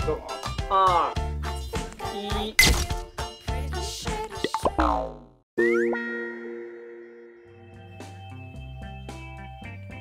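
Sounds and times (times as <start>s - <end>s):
bouncy background music: 0.0s - 6.3s
comic boing pitch glides: 4.5s - 7.4s.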